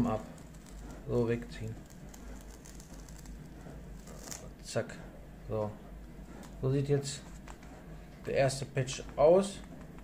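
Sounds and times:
tape peeling off leather: 0:01.6 - 0:04.5.

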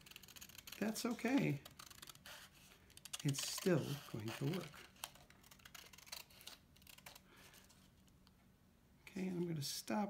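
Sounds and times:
scissors cutting paper: 0:00.0 - 0:07.2.

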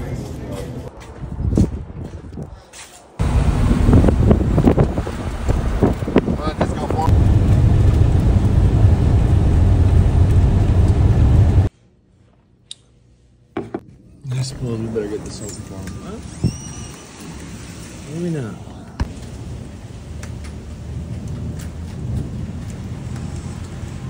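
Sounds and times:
vehicle road and engine noise: 0:00.0 - 0:11.7, 0:14.5 - 0:24.0.

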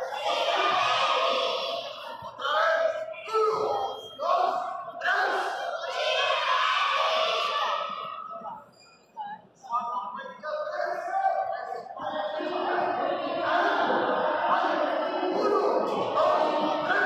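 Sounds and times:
group shouting together: 0:00.0 - 0:08.2.

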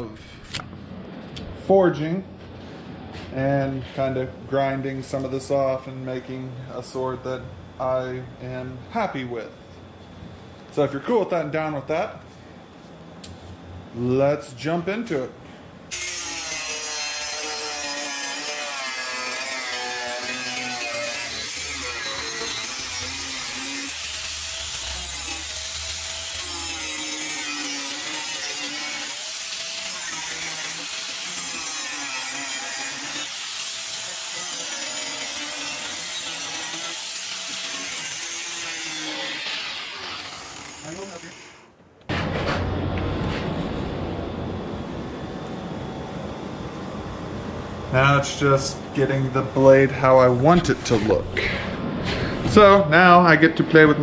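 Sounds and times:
angle grinder cutting steel: 0:15.9 - 0:41.7
low hum: 0:41.4 - 0:52.6.

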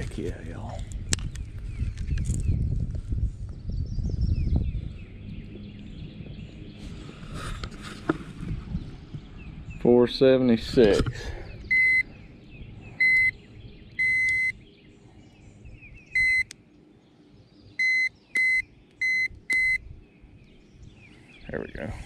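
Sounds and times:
faint bird chirps: 0:11.3 - 0:22.0
digital scale beeping: 0:11.7 - 0:12.1, 0:13.0 - 0:13.4, 0:14.0 - 0:14.6, 0:16.2 - 0:16.5, 0:17.8 - 0:19.8.

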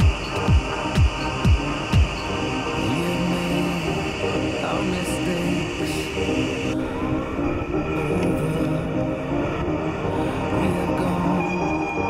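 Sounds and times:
steady hiss: 0:00.0 - 0:08.0
music with long held notes: 0:00.0 - 0:12.0.

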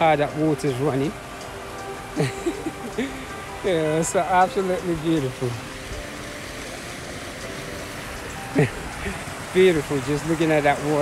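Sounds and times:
water rushing over spillway: 0:00.0 - 0:11.0.

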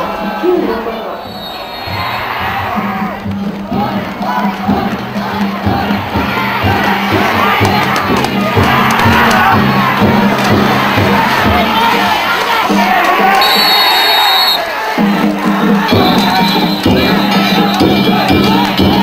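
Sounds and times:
crowd shouting and cheering: 0:00.0 - 0:19.0
high steady tone: 0:15.9 - 0:18.5.

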